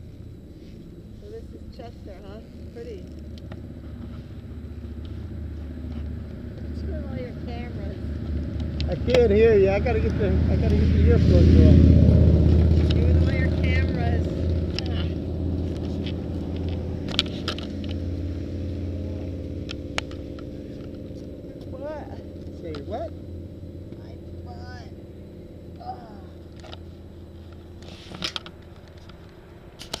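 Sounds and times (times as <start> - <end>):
motorcycle engine running: 0.0 - 30.0.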